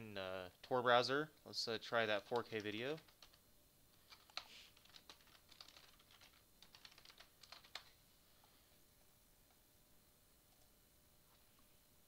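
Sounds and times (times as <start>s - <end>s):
typing on computer keyboard: 2.2s - 3.4s, 4.1s - 8.0s.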